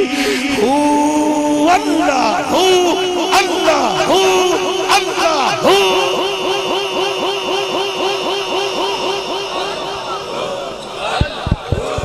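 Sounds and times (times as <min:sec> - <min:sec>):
echoing shouted syllable: 0:01.6 - 0:11.2.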